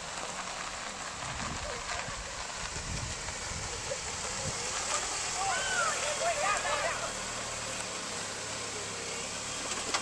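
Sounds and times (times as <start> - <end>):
car tyres rolling on gravel: 0.0 - 10.0.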